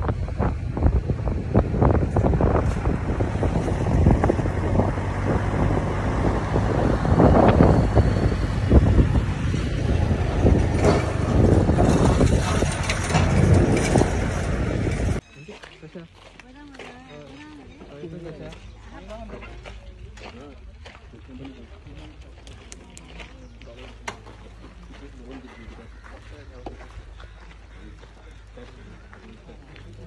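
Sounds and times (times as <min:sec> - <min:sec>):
car road and engine rumble: 0:00.0 - 0:15.2, 0:18.4 - 0:30.0
wind buffeting microphone: 0:00.0 - 0:15.2.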